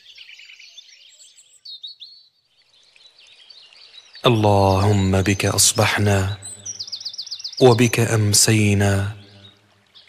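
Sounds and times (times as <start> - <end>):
faint birdsong chirps: 0.0 - 10.0.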